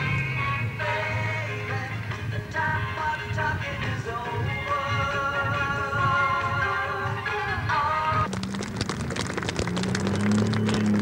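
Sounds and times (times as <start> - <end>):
truck engine running: 8.1 - 11.0
dense crackle of clicks: 8.3 - 11.0.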